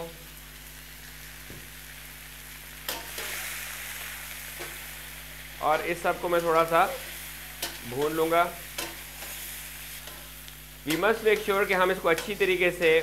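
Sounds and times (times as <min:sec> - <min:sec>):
chicken sizzling in hot fat: 0:00.0 - 0:13.0.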